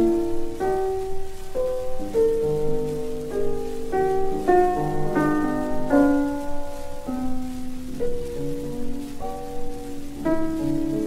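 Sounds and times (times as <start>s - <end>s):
record hiss and crackle: 0.0s - 11.0s
slow solo piano: 0.0s - 11.0s.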